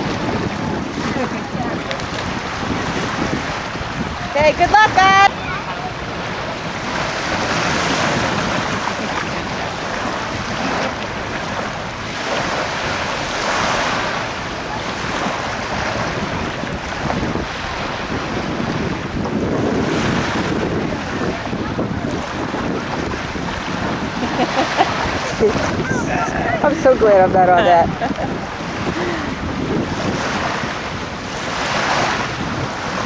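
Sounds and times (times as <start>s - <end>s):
small surf washing onto beach: 0.0s - 33.0s
wind buffeting microphone: 0.0s - 33.0s.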